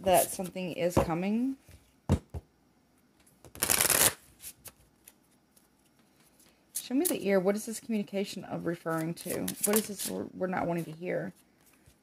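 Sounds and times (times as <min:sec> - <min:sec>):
deck of cards shuffling: 0:03.5 - 0:07.2, 0:08.8 - 0:12.0.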